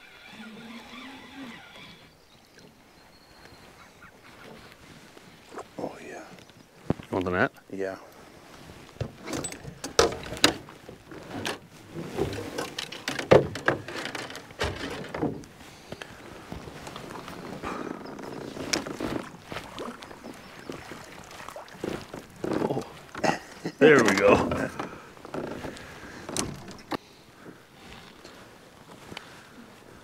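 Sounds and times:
knocks against canoe: 9.0 - 15.5
fish splashing: 17.0 - 23.2
low voices: 22.5 - 24.9.

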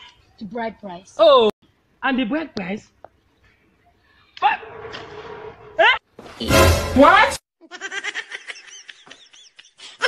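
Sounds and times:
short rising yelp: 4.4 - 6.0.

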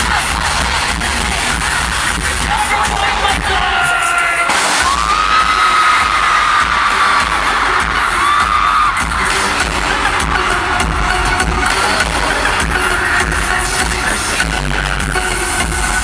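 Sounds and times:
crowd cheering: 0.0 - 14.4
electronic pop music: 0.0 - 16.0
pounding bass beat: 0.0 - 16.0.

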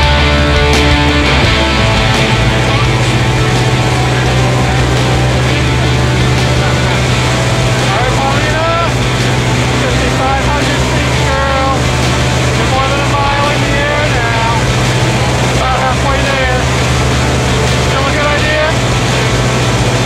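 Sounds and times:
people talking loudly: 0.0 - 20.0.

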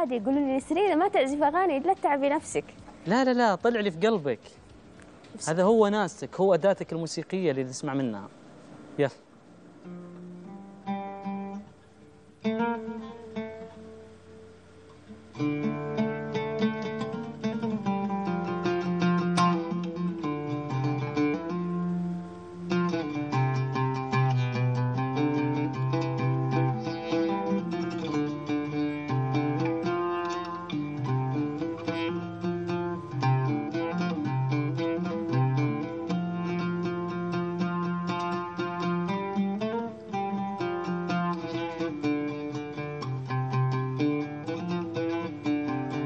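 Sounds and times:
oud strings plucked: 9.8 - 46.0.

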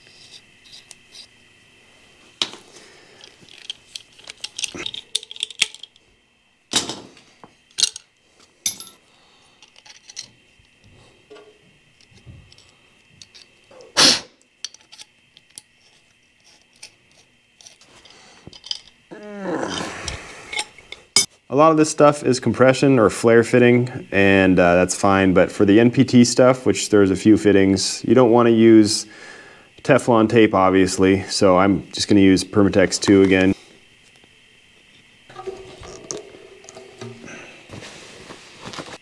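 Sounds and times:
faint high hum: 0.0 - 39.0
metal fittings and tools clinking: 3.2 - 6.0, 7.7 - 9.0, 16.5 - 19.0, 35.3 - 37.4.

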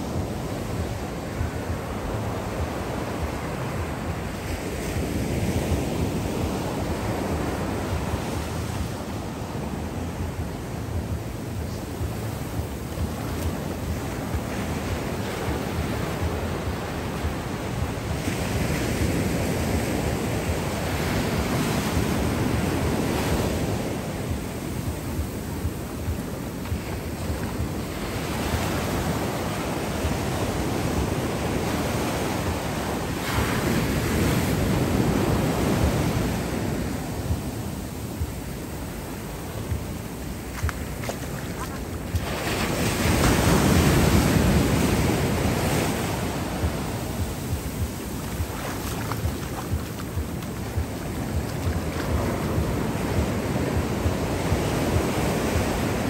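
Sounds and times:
ocean waves breaking on beach: 0.0 - 56.0.

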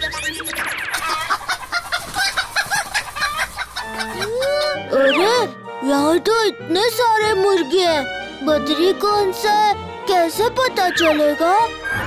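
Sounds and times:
cartoon chicken clucking: 0.0 - 5.3.

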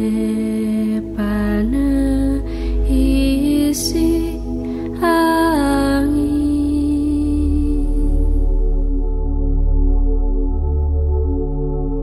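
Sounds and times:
low steady drone: 0.0 - 12.0
slow film score melody: 0.0 - 12.0.

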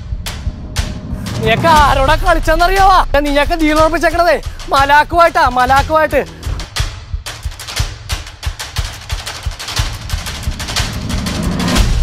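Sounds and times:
sharp rapid cracks: 0.3 - 12.0.

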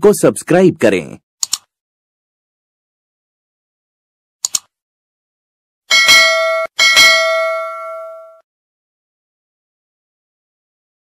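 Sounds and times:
notification bell dinging: 5.9 - 8.4.

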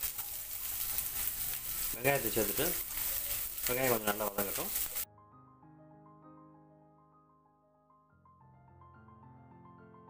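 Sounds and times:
onions sizzling in hot oil: 0.0 - 5.1.

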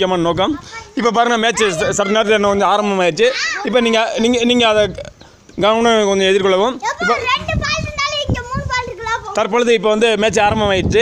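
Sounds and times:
child speaking: 0.6 - 2.6, 3.2 - 4.0, 6.8 - 9.6.

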